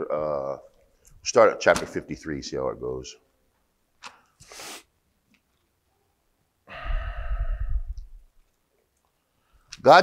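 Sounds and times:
man sighing into microphone: 0:06.7 - 0:08.0.

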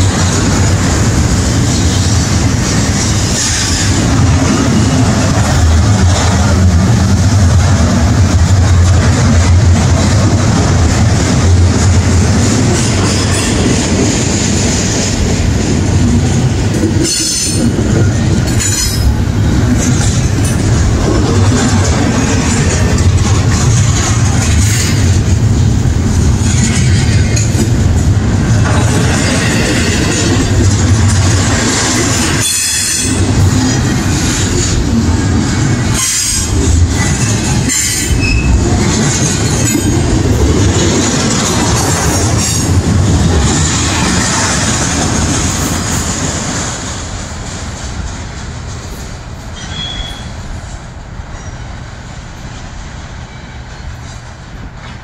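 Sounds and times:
freight train passing: 0:00.0 - 0:55.0.

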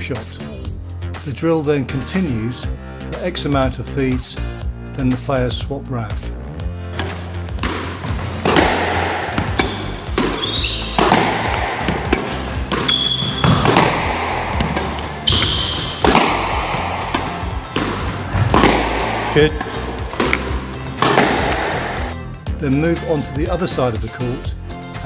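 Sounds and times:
background music: 0:00.0 - 0:25.0
squash ball hitting rackets and walls: 0:06.8 - 0:22.2.

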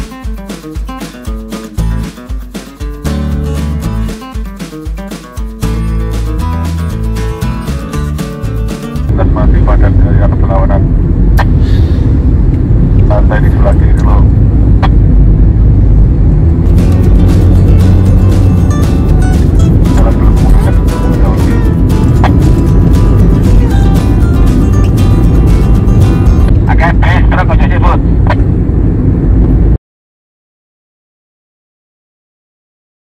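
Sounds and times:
music playing: 0:00.0 - 0:10.6, 0:16.4 - 0:26.8
car driving low rumble: 0:09.0 - 0:29.8.

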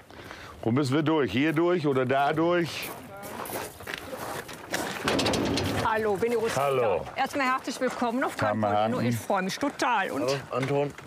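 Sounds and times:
footsteps on gravel: 0:01.5 - 0:08.4.

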